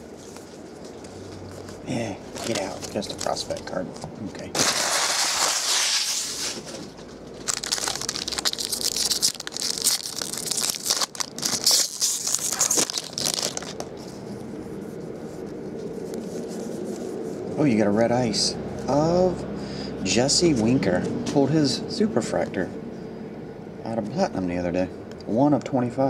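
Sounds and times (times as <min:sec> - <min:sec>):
foil wrapper crinkling and tearing: 0:01.1 - 0:03.8, 0:04.5 - 0:14.0.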